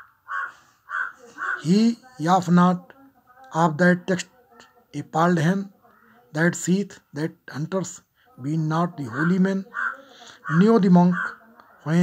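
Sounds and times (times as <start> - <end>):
bird harsh calls: 0.0 - 1.7, 9.1 - 11.4
man speaking: 1.6 - 2.9, 3.5 - 4.3, 5.0 - 5.7, 6.3 - 9.7, 10.4 - 12.0.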